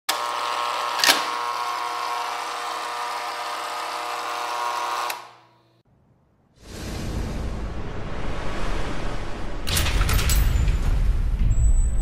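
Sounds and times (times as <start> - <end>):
electric machine buzz: 0.1 - 5.8.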